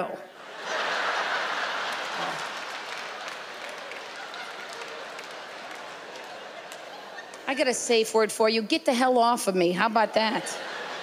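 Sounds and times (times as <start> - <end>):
audience applauding: 0.6 - 7.5.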